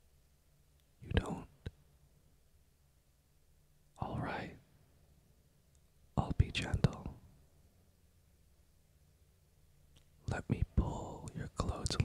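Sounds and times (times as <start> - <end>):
small mouth click: 9.9 - 10.2.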